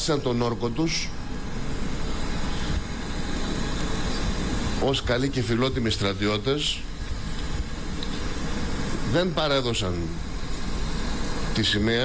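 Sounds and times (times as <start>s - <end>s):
engine rumble with hiss: 0.0s - 12.0s.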